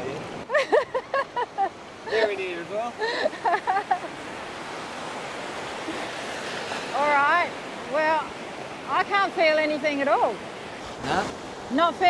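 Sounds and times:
small waves breaking on beach: 0.0s - 12.0s.

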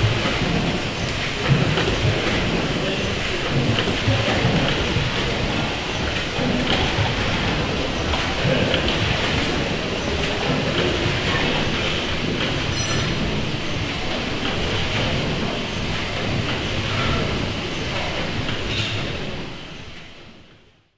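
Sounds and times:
steam engine clatter: 0.0s - 20.7s.

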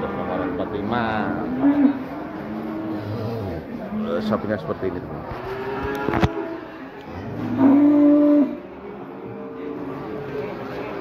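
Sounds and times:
cow mooing: 0.0s - 4.3s, 5.4s - 9.1s.

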